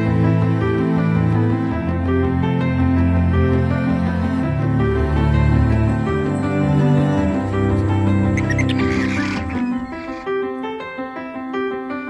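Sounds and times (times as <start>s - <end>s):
soundtrack music with sustained notes: 0.0s - 12.0s
screeching chirping dinosaur cry: 8.4s - 10.3s.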